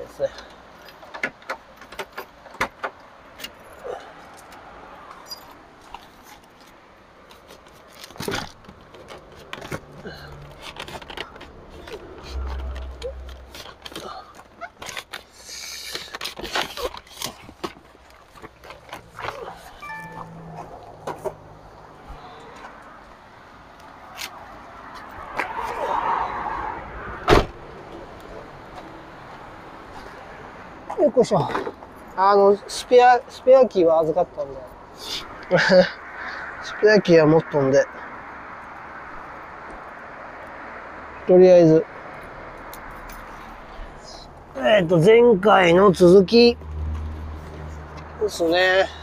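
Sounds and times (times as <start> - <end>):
truck door shutting: 27.2 - 27.6.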